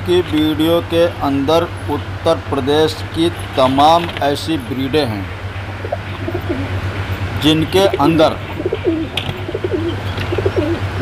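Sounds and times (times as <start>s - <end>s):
steady low hum: 0.0s - 11.0s
pigeons cooing: 5.8s - 6.8s, 7.8s - 11.0s.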